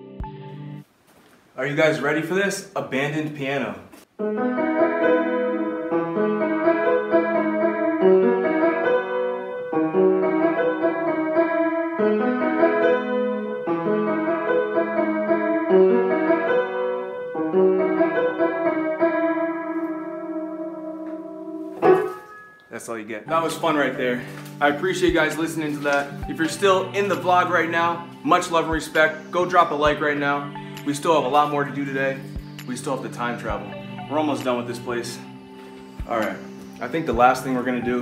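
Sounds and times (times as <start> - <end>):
piano chords: 4.2 - 38.0.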